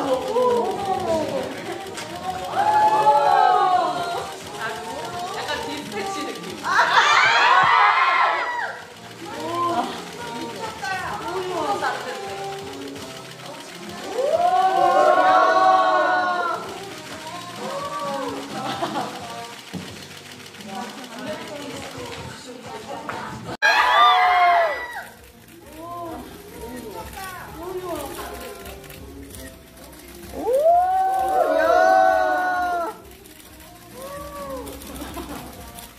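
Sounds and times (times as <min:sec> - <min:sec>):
women singing and talking: 0:00.0 - 0:23.6, 0:24.8 - 0:35.9
faint background music: 0:00.0 - 0:35.9.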